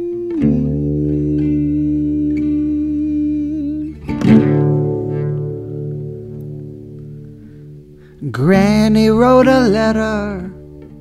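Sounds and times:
guitar chords ringing: 0.0s - 11.0s.

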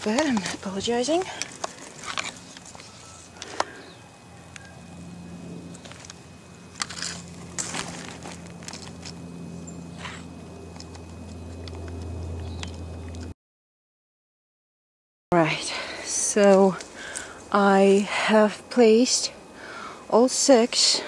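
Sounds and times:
twigs and leaf litter crackling: 0.0s - 4.8s, 5.7s - 13.3s, 16.4s - 18.2s.

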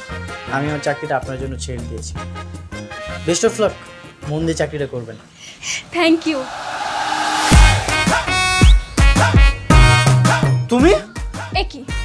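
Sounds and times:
steady hissing: 5.4s - 8.6s.

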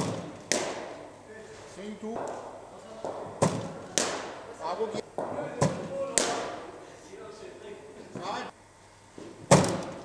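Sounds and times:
cricket ball hitting bat: 0.0s - 1.0s, 3.0s - 4.4s, 5.2s - 6.6s, 9.5s - 10.0s
cricket ball hitting matting: 0.0s - 1.0s, 3.0s - 4.4s, 5.2s - 6.6s, 9.5s - 10.0s.

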